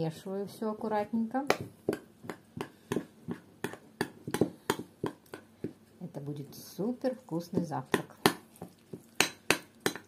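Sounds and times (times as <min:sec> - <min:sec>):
spoon stirring thick food: 0:01.5 - 0:10.0.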